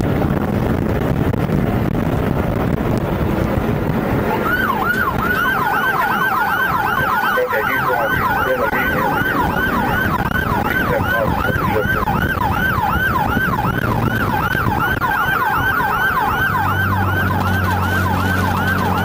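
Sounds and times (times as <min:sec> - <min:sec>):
road and engine noise: 0:00.0 - 0:19.0
police siren yelping: 0:04.0 - 0:19.0.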